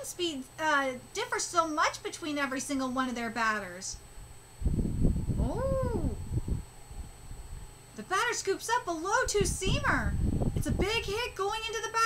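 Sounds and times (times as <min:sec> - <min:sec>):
low rumbling noise: 0:03.9 - 0:08.1, 0:08.9 - 0:11.7.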